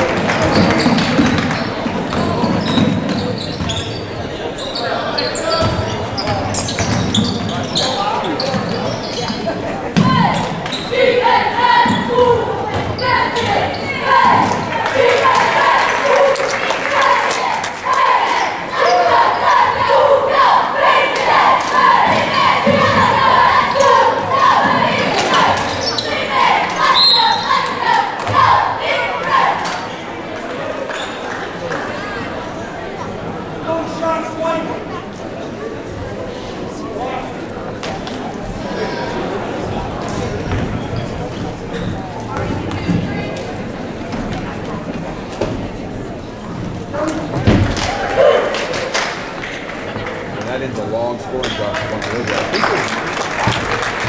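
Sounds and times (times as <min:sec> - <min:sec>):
basketball bouncing on court: 0:00.4 - 0:03.8, 0:40.4 - 0:40.9
voices calling and shouting: 0:00.5 - 0:30.1.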